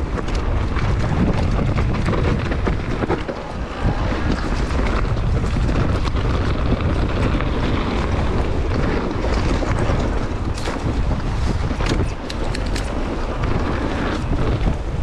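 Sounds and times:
bike rattles and clicks: 0:00.0 - 0:15.0
tyres rolling over dirt trail: 0:00.0 - 0:15.0
wind buffeting microphone: 0:00.0 - 0:15.0.

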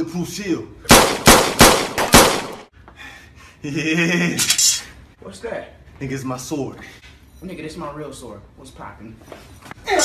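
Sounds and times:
gunshots with ringing tail: 0:00.9 - 0:02.7.

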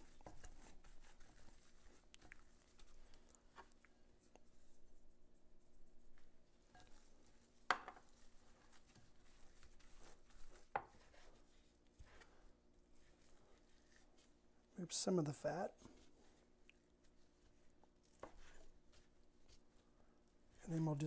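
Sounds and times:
hands squelching ground meat: 0:00.0 - 0:14.8, 0:15.8 - 0:20.8.

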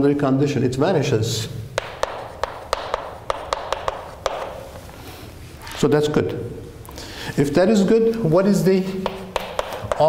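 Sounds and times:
chalk scratching: 0:01.8 - 0:04.9, 0:08.8 - 0:10.0
chalk tapping on chalkboard: 0:01.8 - 0:04.9, 0:08.8 - 0:10.0.

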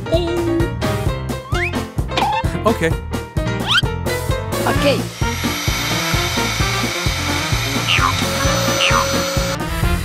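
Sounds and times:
upbeat background music: 0:00.0 - 0:10.0
vacuum cleaner running: 0:04.7 - 0:10.0.

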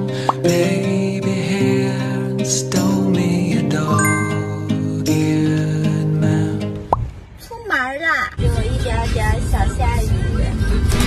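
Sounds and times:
background music: 0:00.0 - 0:07.0
rising pop sound effect: 0:03.9 - 0:05.0
woman speaking: 0:07.4 - 0:10.3.

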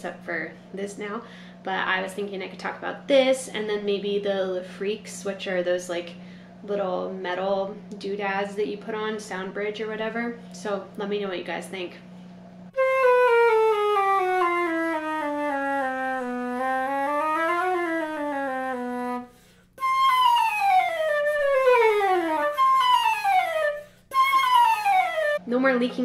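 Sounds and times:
flute playing scales and runs: 0:12.7 - 0:25.4.

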